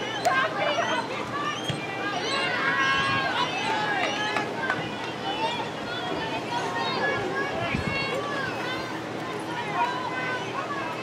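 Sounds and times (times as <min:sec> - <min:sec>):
people shouting and calling out: 0:00.0 - 0:11.0.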